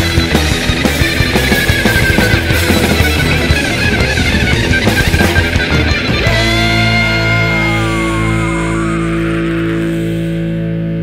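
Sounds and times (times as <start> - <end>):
distorted electric guitar chord ringing: 0.0 - 11.0.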